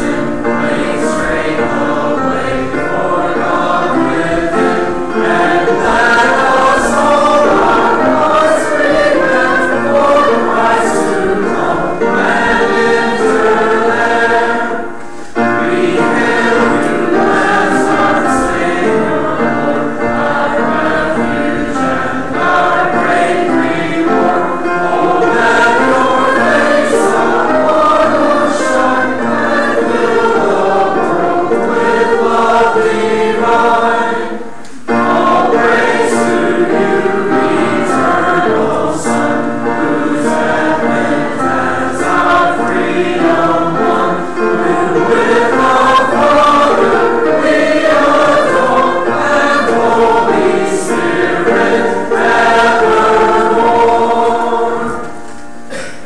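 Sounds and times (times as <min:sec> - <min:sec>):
choir and congregation singing hymn: 0:00.0 - 0:56.0.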